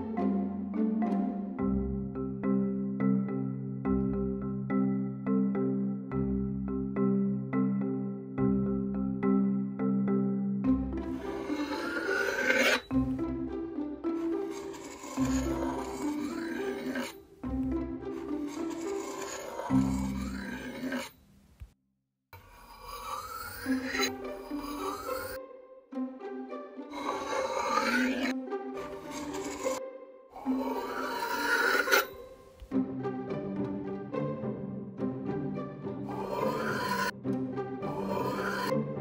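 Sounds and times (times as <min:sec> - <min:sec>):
background music: 0:00.0 - 0:21.2, 0:23.0 - 0:39.0
knife scraping through sand: 0:11.2 - 0:12.9, 0:14.3 - 0:17.2, 0:18.2 - 0:21.1, 0:22.6 - 0:25.4, 0:27.0 - 0:28.3, 0:28.9 - 0:29.8, 0:30.4 - 0:32.2, 0:36.1 - 0:37.1, 0:37.9 - 0:38.7.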